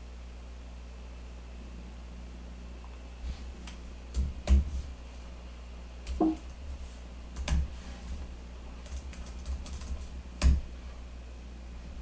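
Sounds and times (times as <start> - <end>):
computer keyboard typing: 7.3 - 7.7, 8.8 - 10.6.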